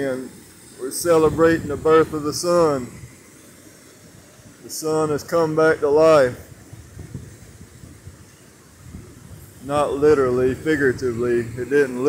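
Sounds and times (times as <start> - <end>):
creek rushing over rocks: 0.0 - 12.0.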